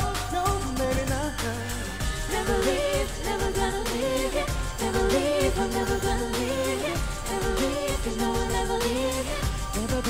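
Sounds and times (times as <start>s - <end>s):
electronic backing track with beat: 0.0s - 10.0s
singers' voices: 0.0s - 10.0s.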